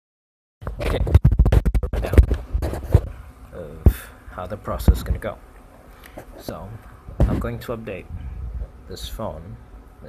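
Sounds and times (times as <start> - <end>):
phone microphone handling scratches: 0.6 - 3.2, 6.1 - 7.7.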